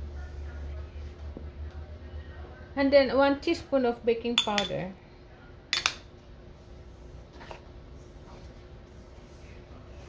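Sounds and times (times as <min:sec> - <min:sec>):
utensil clinking against bowl: 0:04.4 - 0:04.9, 0:05.8 - 0:06.0.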